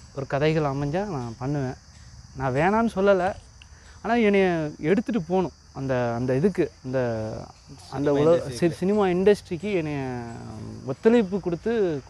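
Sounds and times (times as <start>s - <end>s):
insects chirring: 0.0s - 12.0s
man talking: 4.1s - 12.0s.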